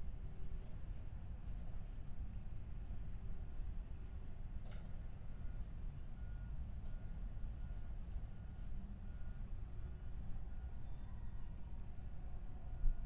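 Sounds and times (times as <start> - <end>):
freight train rumbling on bridge: 7.0 - 13.0.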